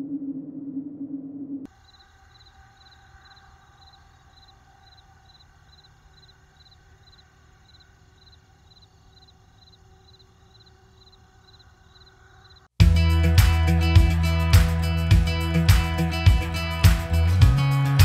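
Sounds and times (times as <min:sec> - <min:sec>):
insect chirping: 0:01.7 - 0:12.7.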